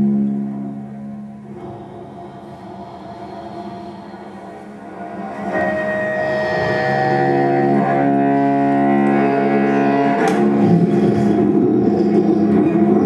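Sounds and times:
cello bowed low notes: 0.0s - 13.0s.

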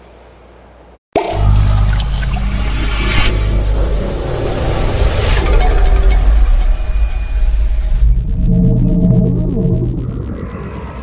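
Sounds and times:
deep rumbling swell: 1.6s - 11.0s
held synth tones: 5.5s - 11.0s.

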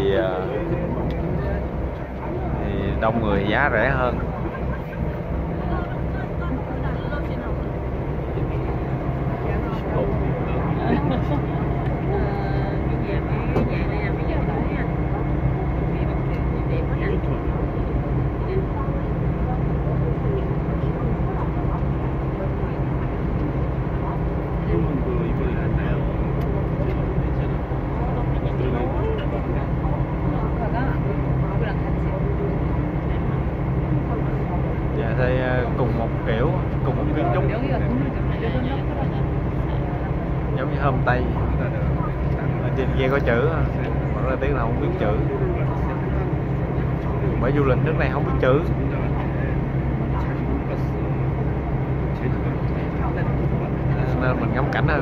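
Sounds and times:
crowd chatter: 0.0s - 55.0s
ferry engine droning: 0.0s - 55.0s.

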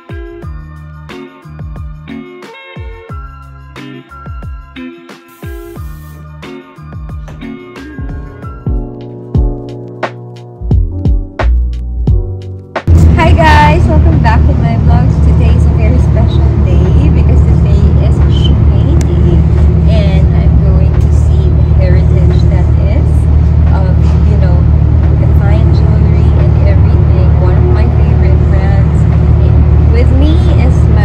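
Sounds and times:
low rumble of street noise: 12.9s - 31.0s.

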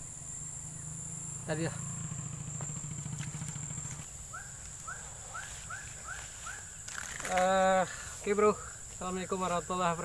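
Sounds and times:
small engine droning: 0.0s - 6.6s
high insect whine: 0.0s - 10.0s.

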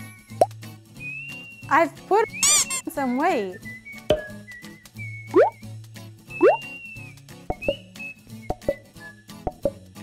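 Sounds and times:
playful background music: 0.0s - 10.0s.

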